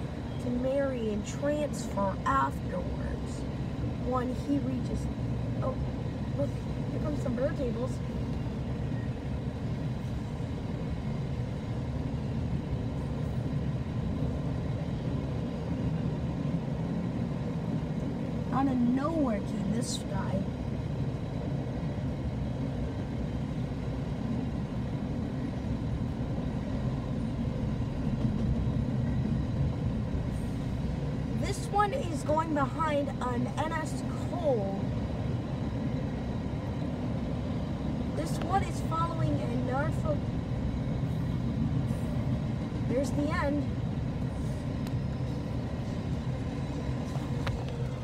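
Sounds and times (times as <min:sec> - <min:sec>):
freight train rumbling on rails: 0:00.0 - 0:48.0.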